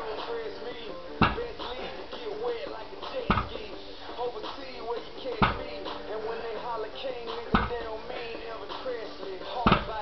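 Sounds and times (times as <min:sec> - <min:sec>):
barbell thudding on ground: 0:03.1 - 0:03.7, 0:05.4 - 0:05.8, 0:07.3 - 0:07.9.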